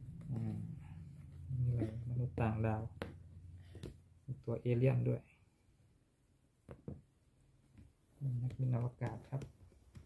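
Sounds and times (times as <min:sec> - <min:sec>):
person speaking: 0:00.0 - 0:05.5, 0:08.1 - 0:09.7.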